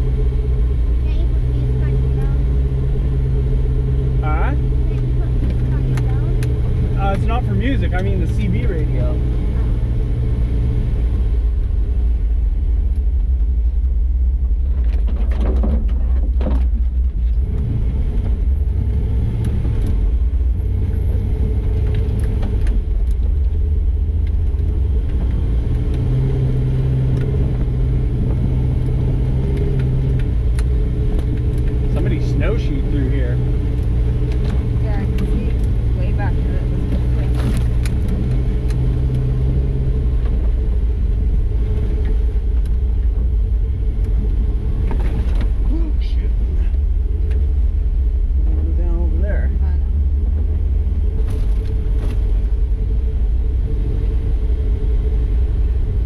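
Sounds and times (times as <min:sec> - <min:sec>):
engine low rumble: 0:00.0 - 0:56.0.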